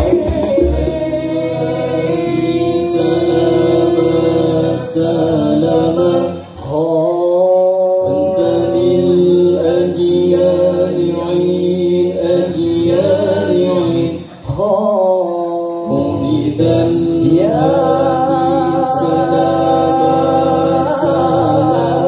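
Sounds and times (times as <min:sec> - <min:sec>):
group chanting held notes: 0:00.0 - 0:22.0.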